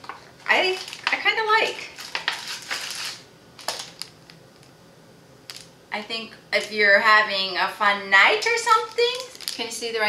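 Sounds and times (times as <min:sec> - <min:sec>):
plastic packaging crinkling: 0:00.0 - 0:04.7, 0:08.6 - 0:09.8.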